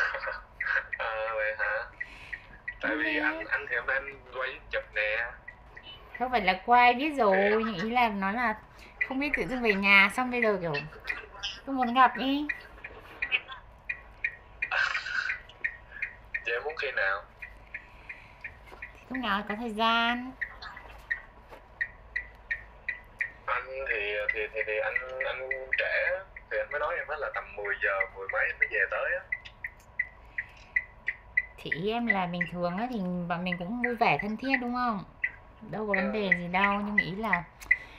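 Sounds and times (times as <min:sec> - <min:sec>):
broken voice on phone call: 0:00.0 - 0:02.0, 0:02.8 - 0:13.6, 0:16.5 - 0:17.3, 0:18.9 - 0:21.1, 0:23.5 - 0:29.3, 0:31.6 - 0:37.5
faint steady tone: 0:00.0 - 0:37.9
high-pitched electronic beeps: 0:00.0 - 0:37.9.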